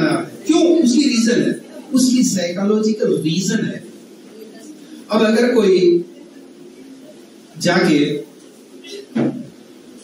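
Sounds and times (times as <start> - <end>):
man speaking through microphone: 0.0 - 4.0, 5.1 - 6.1, 7.5 - 8.3
low room noise: 0.0 - 10.0.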